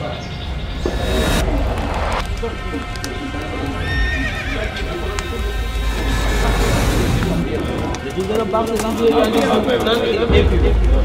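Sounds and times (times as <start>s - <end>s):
deep rumble: 0.1s - 8.6s.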